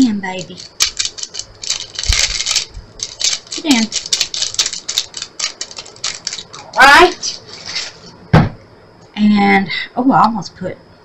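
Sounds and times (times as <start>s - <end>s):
plastic bag crinkling: 0.4s - 8.0s
dull bump: 8.3s - 8.6s.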